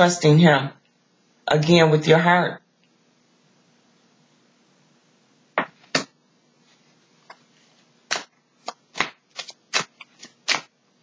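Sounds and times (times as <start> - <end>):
cards shuffling: 7.2 - 10.8.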